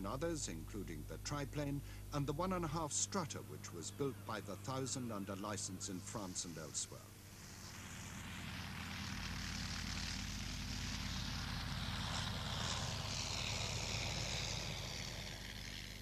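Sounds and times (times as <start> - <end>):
propeller aircraft engine running: 0.0 - 16.0.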